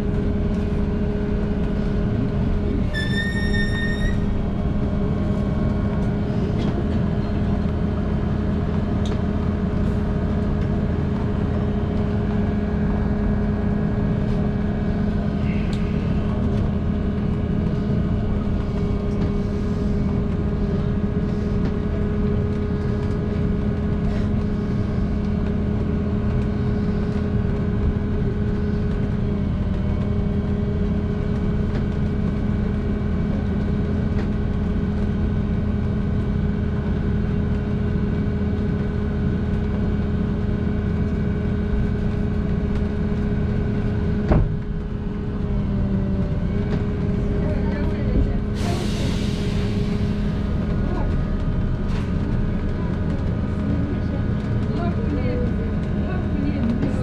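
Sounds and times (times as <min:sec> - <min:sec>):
vehicle cabin hum: 0:04.0 - 0:57.0.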